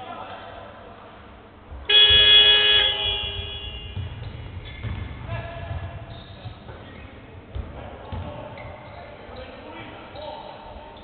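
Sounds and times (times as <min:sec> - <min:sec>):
basketball arena buzzer: 0:01.9 - 0:04.2.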